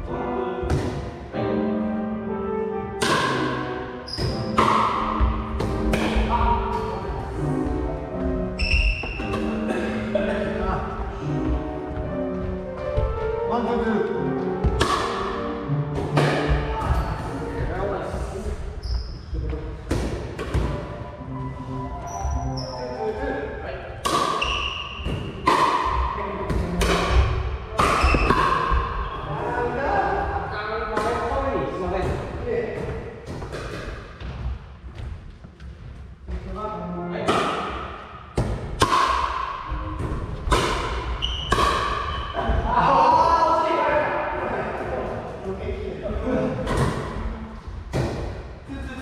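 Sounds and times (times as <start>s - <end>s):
background music: 0.0s - 18.5s, 19.9s - 32.0s, 36.1s - 48.7s
paddles hitting plastic ball: 14.6s - 15.3s.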